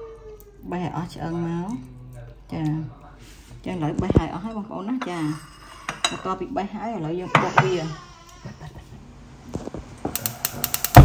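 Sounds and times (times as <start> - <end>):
gas burner whoomp: 9.4 - 11.0
gas igniter clicking rapidly: 10.1 - 11.0.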